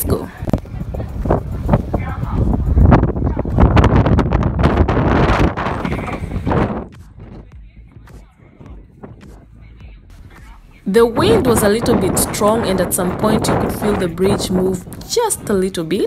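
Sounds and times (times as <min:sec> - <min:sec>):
people's voices: 0:00.0 - 0:03.8, 0:10.2 - 0:16.0
wind buffeting microphone: 0:00.0 - 0:09.8, 0:10.9 - 0:16.0.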